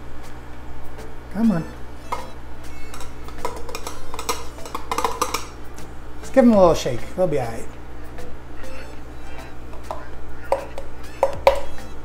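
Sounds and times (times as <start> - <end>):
plastic container clinking on glass jar: 3.0 - 5.5.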